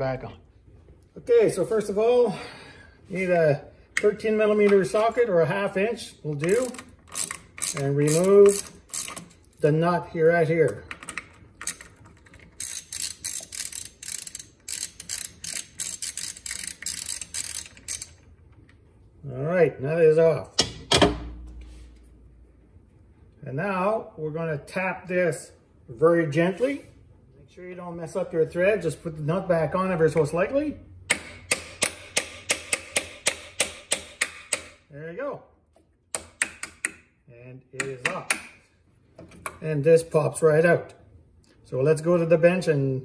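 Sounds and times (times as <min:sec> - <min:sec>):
ratchet wrench clicking: 0:06.4 - 0:09.4, 0:11.1 - 0:18.2, 0:31.1 - 0:34.8.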